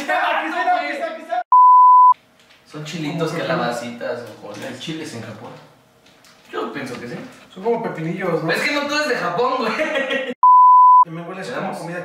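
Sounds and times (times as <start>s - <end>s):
single-pitch test tone bleep: 1.5s - 2.2s, 10.4s - 11.0s.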